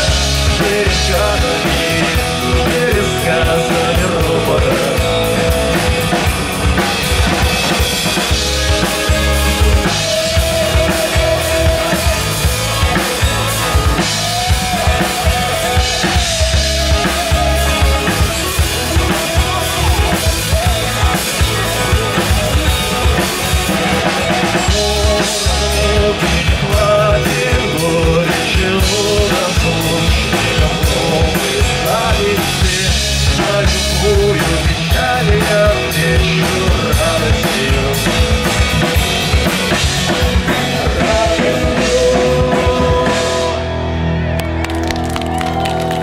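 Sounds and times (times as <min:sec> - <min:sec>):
bass guitar: 0:00.0 - 0:46.0
drum kit: 0:00.0 - 0:46.0
guitars: 0:00.0 - 0:46.0
wavering lead melody: 0:04.4 - 0:25.9.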